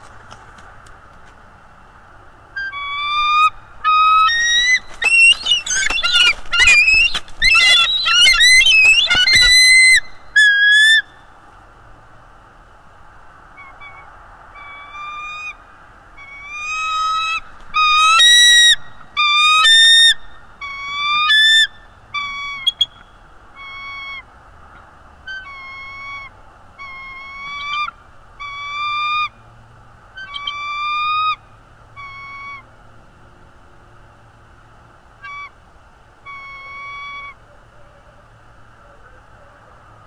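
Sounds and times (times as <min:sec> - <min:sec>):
eagle calling: 0:02.6 - 0:11.2, 0:13.5 - 0:15.6, 0:16.2 - 0:29.4, 0:30.2 - 0:31.4, 0:32.0 - 0:32.7, 0:35.2 - 0:35.6, 0:36.2 - 0:39.8.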